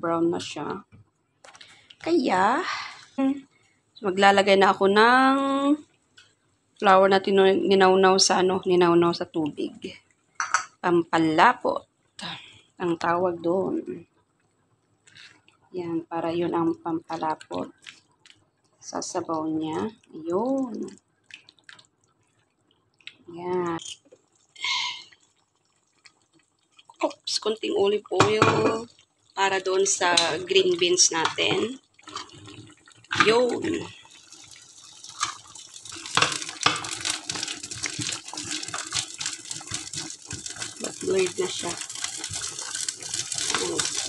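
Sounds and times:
vegetables sizzling in oil: 0:27.0 - 0:44.0
spatula stirring thick sauce: 0:28.9 - 0:33.4, 0:34.0 - 0:44.0.

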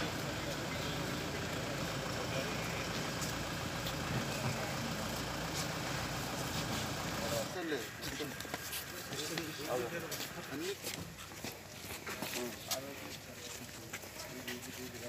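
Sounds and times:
indistinct voices talking: 0:00.0 - 0:15.0
vehicle engine idling: 0:00.0 - 0:15.0.

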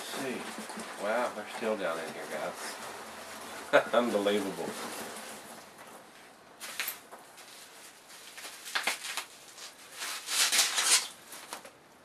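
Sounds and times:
plastic wrap crinkling: 0:00.0 - 0:11.8.

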